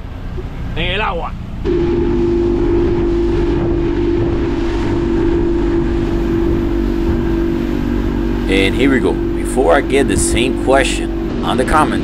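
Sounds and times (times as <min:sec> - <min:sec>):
outboard motor running: 0:00.0 - 0:12.0
wind and wake rushing: 0:00.0 - 0:12.0.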